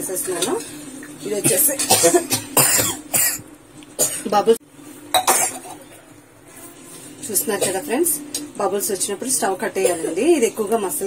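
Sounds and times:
person coughing: 0:01.4 - 0:03.4, 0:05.2 - 0:05.8.

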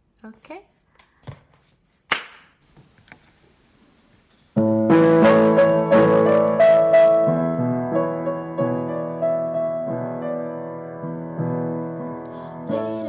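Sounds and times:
piano chords: 0:04.6 - 0:13.0.

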